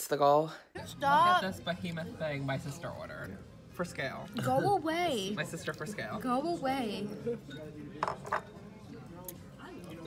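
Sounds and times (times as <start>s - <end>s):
background chatter of voices: 0.4s - 10.0s.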